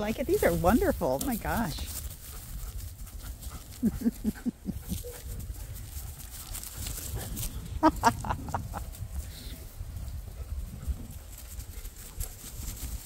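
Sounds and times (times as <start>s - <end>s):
woman laughing: 3.8s - 5.1s, 7.8s - 9.0s.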